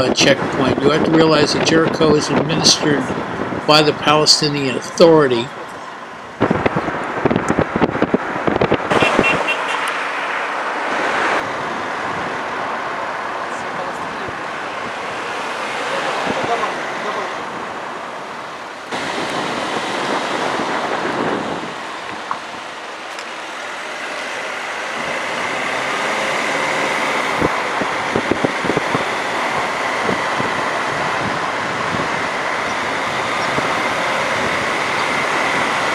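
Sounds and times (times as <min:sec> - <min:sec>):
car road and wind noise: 0:00.0 - 0:35.9
street traffic: 0:00.0 - 0:35.9.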